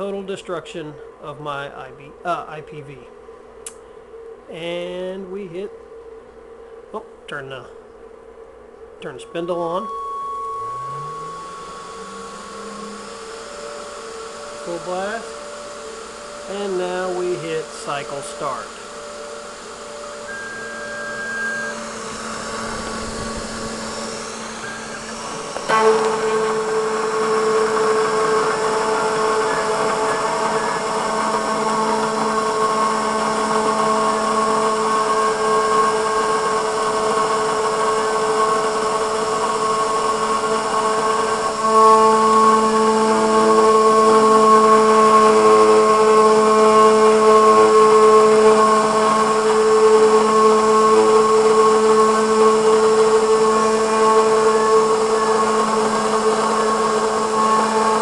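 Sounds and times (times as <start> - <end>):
router spindle whining: 0.0 - 3.0, 8.8 - 58.0.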